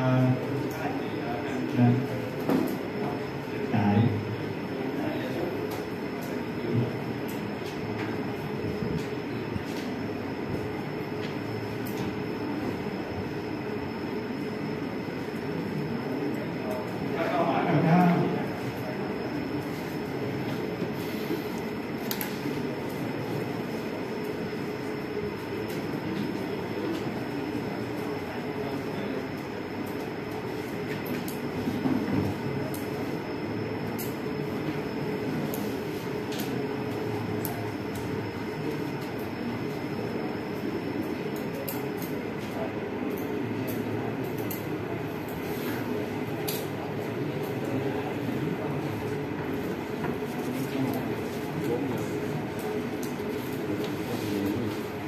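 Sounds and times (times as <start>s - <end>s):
faint high whine: 0.0s - 55.0s
low room noise rumble: 0.0s - 55.0s.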